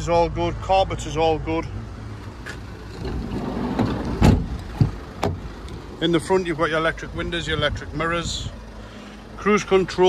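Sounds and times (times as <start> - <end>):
steady low rumble: 1.9 - 10.0
sharp thump: 4.2 - 5.4.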